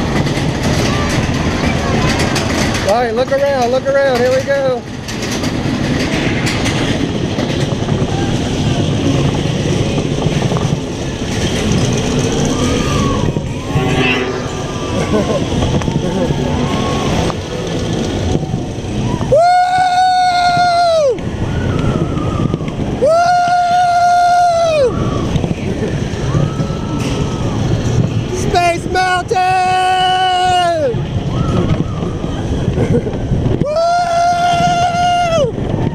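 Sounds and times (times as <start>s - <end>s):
roller coaster rumbling on track: 0.0s - 35.9s
long high-pitched tones: 13.6s - 17.3s.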